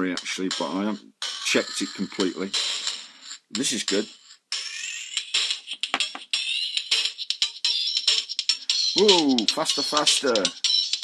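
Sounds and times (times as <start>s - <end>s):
thin electronic rhythm pattern: 0.0s - 11.0s.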